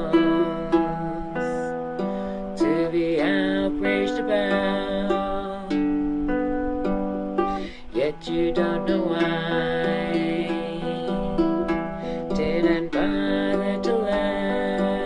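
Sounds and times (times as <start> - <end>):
baritone ukulele: 0.0 - 15.0
woman singing wordless notes: 0.0 - 15.0.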